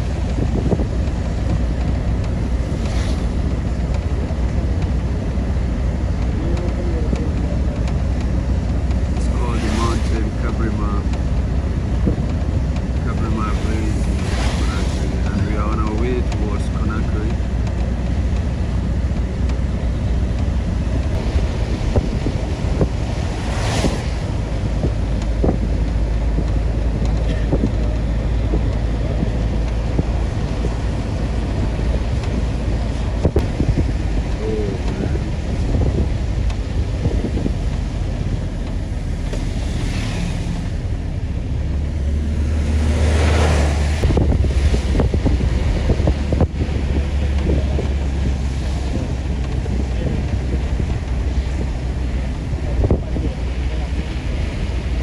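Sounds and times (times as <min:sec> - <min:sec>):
vehicle driving on wet road: 0:00.0 - 0:55.0
wind buffeting microphone: 0:00.0 - 0:55.0.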